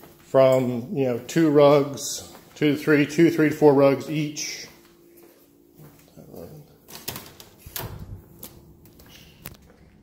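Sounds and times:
quiet footsteps on hard floor: 0.0 - 3.3, 4.4 - 6.5.

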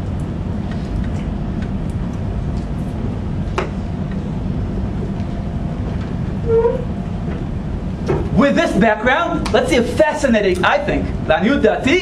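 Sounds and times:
low rumbling room hum: 0.0 - 12.0.

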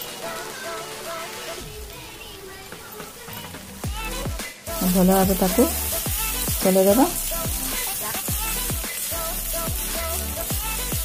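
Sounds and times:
background music with beat: 0.0 - 11.0
vegetables sizzling in oil: 0.0 - 11.0
spatula stirring in pan: 4.8 - 11.0.

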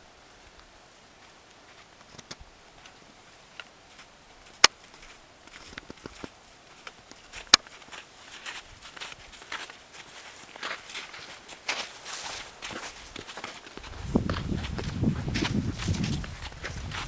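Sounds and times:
footsteps on trail: 0.3 - 17.0.

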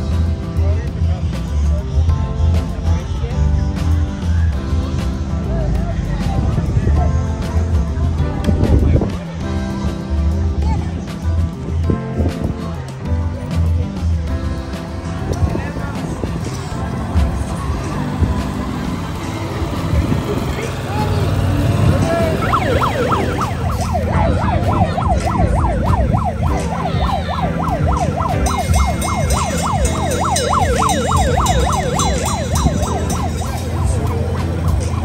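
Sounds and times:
emergency siren yelping: 16.3 - 35.0.

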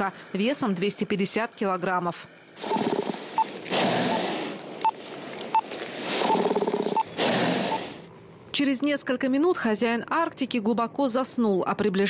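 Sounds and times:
bear breathing heavily: 2.6 - 8.1.

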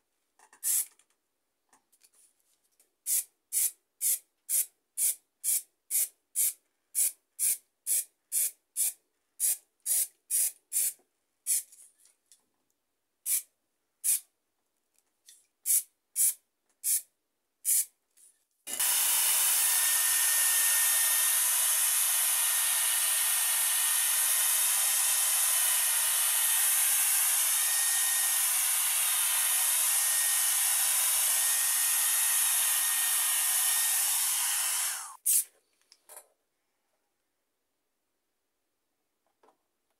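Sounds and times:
spray paint can bursts: 0.6 - 1.0, 3.1 - 11.7, 13.3 - 14.2, 15.7 - 17.9, 26.1 - 35.5
hair dryer blowing: 18.7 - 35.2.

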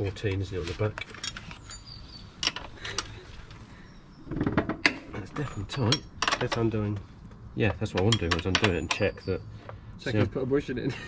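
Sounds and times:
spanners clinking together: 7.9 - 9.4.

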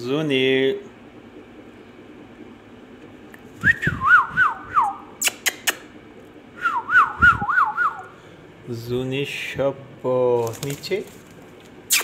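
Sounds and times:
warbling whistle: 3.6 - 5.2, 6.6 - 8.2.

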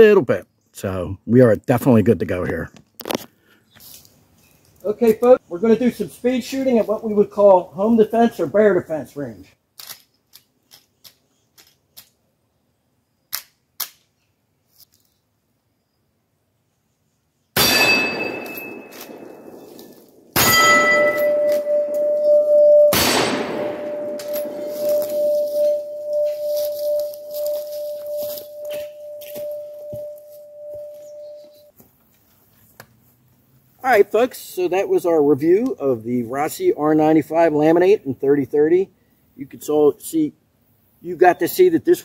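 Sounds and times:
rifle shots: 17.6 - 21.8, 22.9 - 24.8
steel targets ringing: 17.6 - 31.3.

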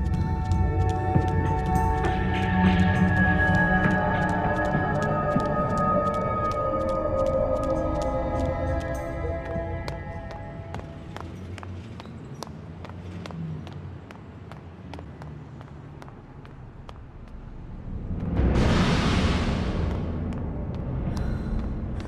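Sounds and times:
low drone: 0.0 - 11.4, 17.1 - 22.0.

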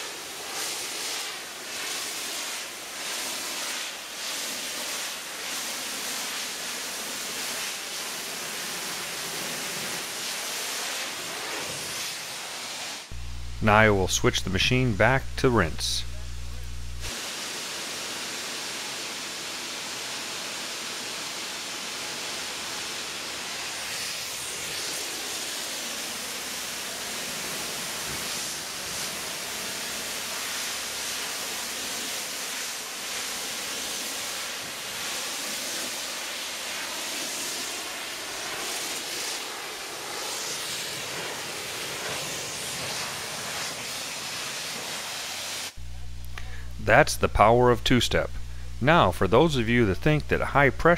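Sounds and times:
pressure washer spraying: 0.0 - 13.6, 16.0 - 45.8.

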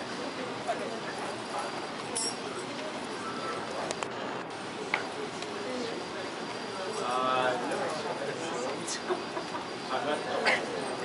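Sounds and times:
murmur of spectators: 0.0 - 11.0.

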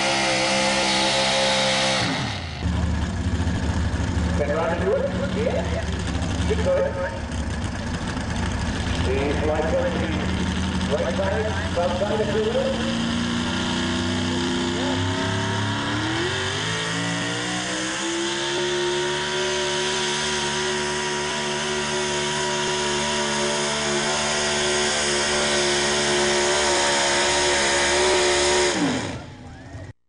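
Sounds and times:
truck engine revving under load: 0.0 - 30.0.

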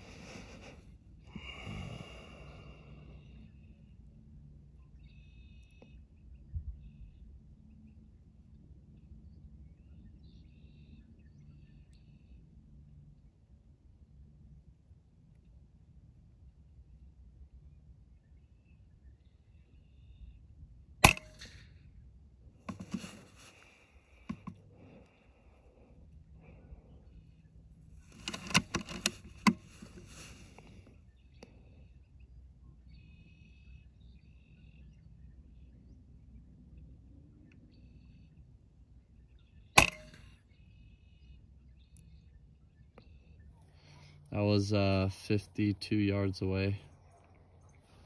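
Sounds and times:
clicks and rustles: 22.7 - 24.9, 28.0 - 30.9
air rifle shots: 39.8 - 40.3.

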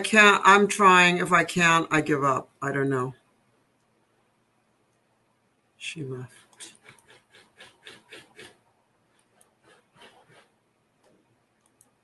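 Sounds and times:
faint keyboard typing: 6.4 - 12.0.

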